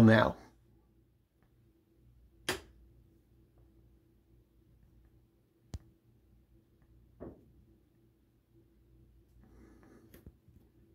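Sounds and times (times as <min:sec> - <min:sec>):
faint steady low hum: 0:00.0 - 0:10.9.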